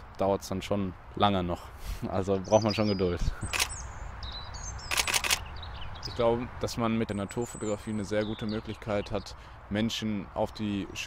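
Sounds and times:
birds chirping: 0.0 - 11.0
camera shutter burst: 3.4 - 3.8, 4.9 - 5.4.

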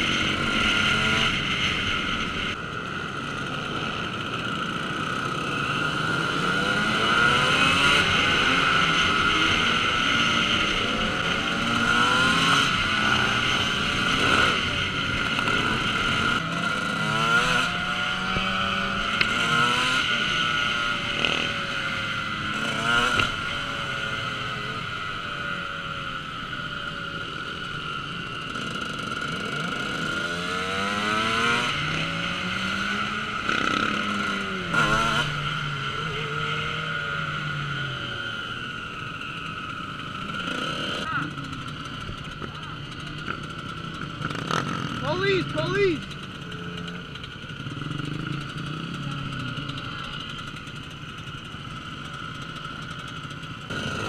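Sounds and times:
dirt bike engine revving: 0.0 - 54.0
motorcycle engines: 0.0 - 54.0.

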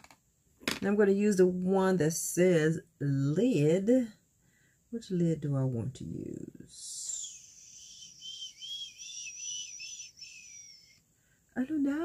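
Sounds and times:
person whistling a tune: 7.0 - 11.0.

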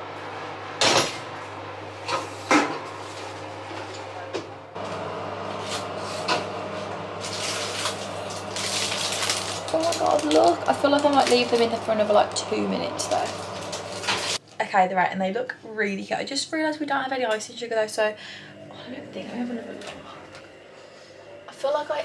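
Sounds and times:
steady low hum: 0.0 - 14.4, 17.8 - 22.0.

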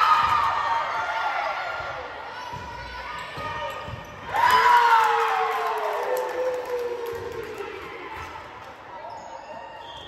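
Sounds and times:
crowd cheering: 4.3 - 8.4.

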